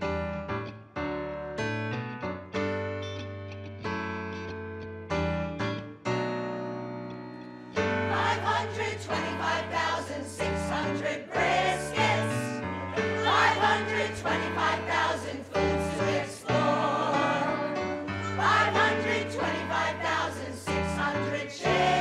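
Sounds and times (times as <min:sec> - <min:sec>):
band with keyboard and bass: 0:00.0 - 0:09.3
choir singing a jingle: 0:07.8 - 0:22.0.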